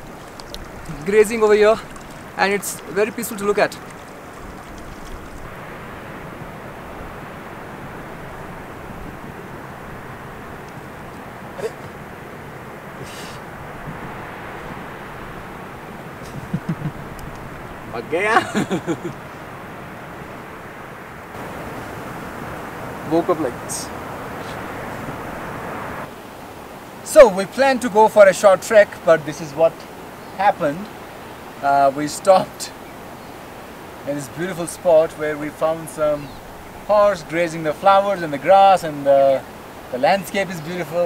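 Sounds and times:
steady outdoor rushing noise: 0.0 - 41.0
wind rushing: 12.0 - 26.1.

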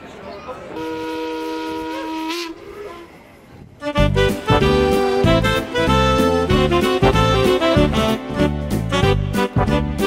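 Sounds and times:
steam whistle blast: 0.8 - 3.1.

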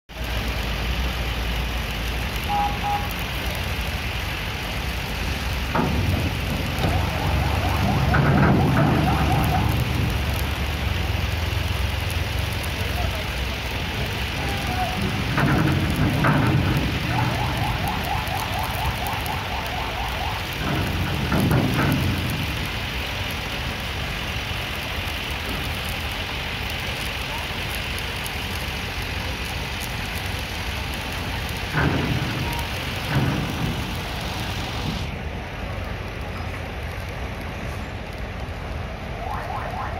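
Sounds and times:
car engines running: 0.1 - 39.9
people's voices: 12.6 - 22.3, 27.0 - 35.0, 39.0 - 39.9.

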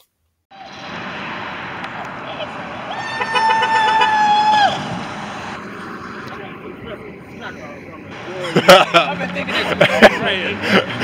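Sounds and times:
street noise: 0.5 - 11.0
voices: 1.8 - 4.9, 5.8 - 11.0.

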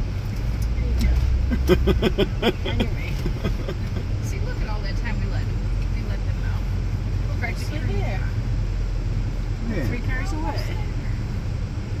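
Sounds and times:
van engine rumble inside cabin: 0.0 - 12.0.

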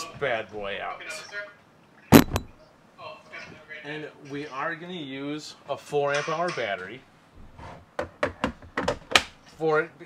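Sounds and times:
plastic device knocking on workbench: 2.2 - 2.5.

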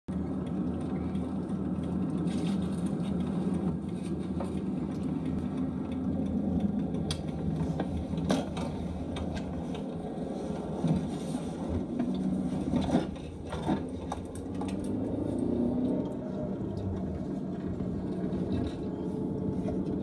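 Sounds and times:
vehicle road and engine rumble: 0.1 - 20.0.

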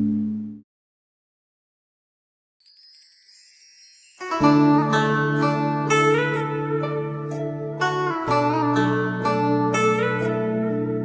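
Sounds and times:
wind chimes shimmering: 2.6 - 6.1.

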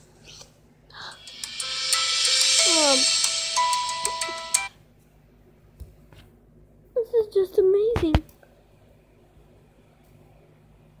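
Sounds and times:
trailer closing music: 1.2 - 4.7.

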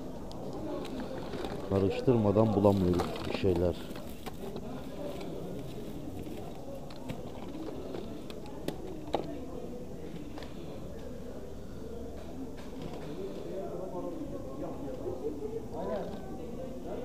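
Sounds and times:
murmur of voices: 0.0 - 17.0
plastic items clicking and clacking: 0.8 - 5.4.

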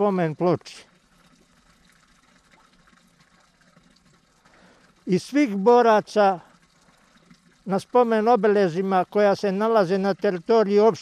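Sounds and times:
faint trickle of running water: 0.0 - 11.0.

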